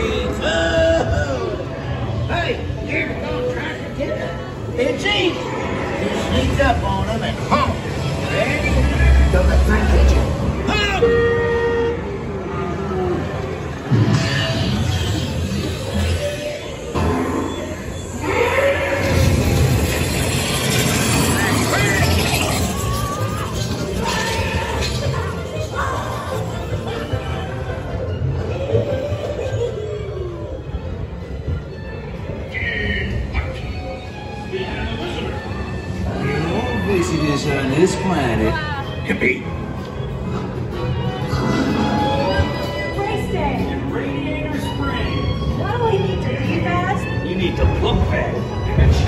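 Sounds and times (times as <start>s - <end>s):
background music: 0.0s - 49.0s
vehicle horn honking: 11.0s - 12.1s.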